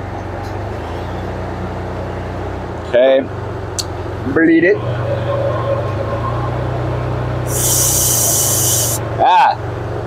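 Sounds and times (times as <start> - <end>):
car engine idling: 0.6 - 10.0
gas hissing from hose fitting: 7.5 - 9.0.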